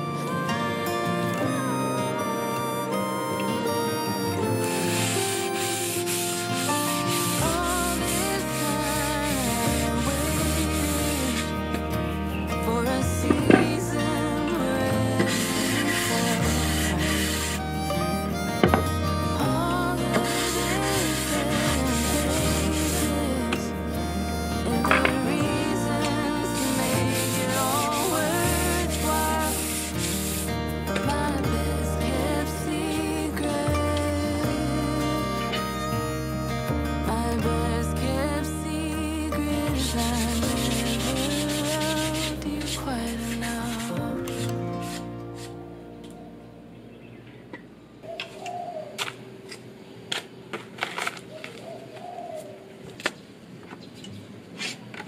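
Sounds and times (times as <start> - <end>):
sandpaper rubbing on wood: 4.6 - 11.6, 15.2 - 17.8, 19.8 - 30.6, 39.8 - 45.6
dove cooing: 48.0 - 49.1, 51.3 - 52.8.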